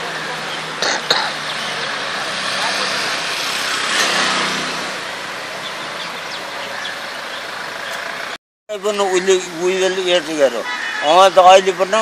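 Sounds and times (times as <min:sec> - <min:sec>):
cars passing: 0:00.0 - 0:12.0.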